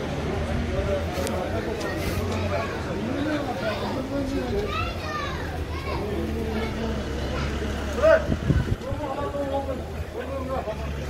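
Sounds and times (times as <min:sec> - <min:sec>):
crowd of people talking: 0:00.0 - 0:11.0.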